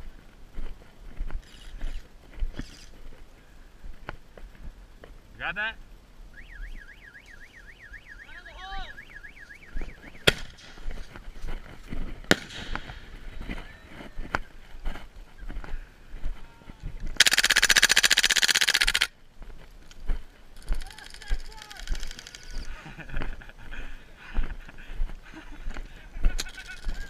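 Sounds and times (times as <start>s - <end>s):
warbling electronic alarm tone: 6.3s - 10.3s
sharp cracks: 9.9s - 11.1s, 12.2s - 13.3s, 17.1s - 19.2s, 20.6s - 22.6s
loud rattling burst: 17.2s - 19.1s.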